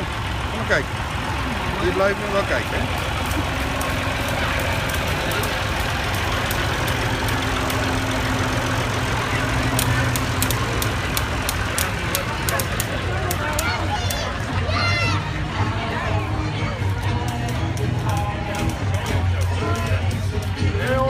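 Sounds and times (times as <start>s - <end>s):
people chattering: 0.0s - 21.0s
tractor engine running: 0.0s - 21.0s.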